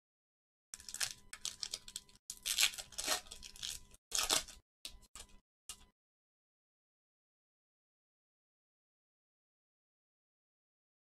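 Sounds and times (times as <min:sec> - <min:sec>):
wrapper tearing and crinkling: 0:00.8 - 0:04.6.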